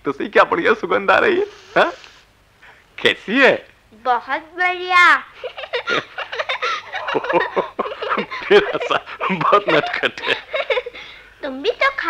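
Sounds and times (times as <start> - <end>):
person laughing in bursts: 5.4 - 11.2.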